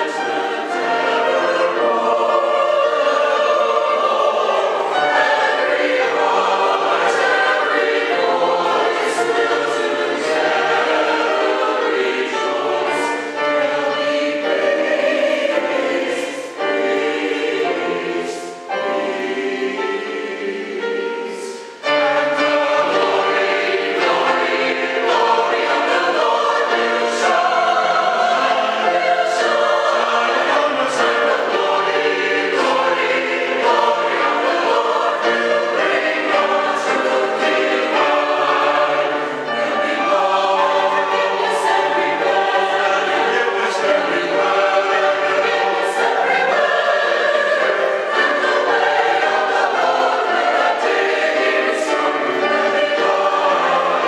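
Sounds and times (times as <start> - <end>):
church choir singing: 0.0 - 54.0.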